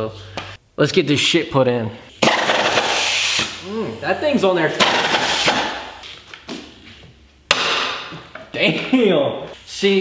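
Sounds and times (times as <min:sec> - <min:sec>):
pneumatic wrench burst: 0:02.2 - 0:03.6, 0:04.8 - 0:05.8.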